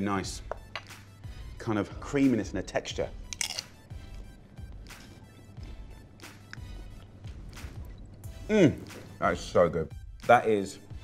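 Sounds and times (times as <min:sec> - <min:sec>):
soft background music: 0:00.0 - 0:11.0
papadom crunching: 0:03.3 - 0:03.8.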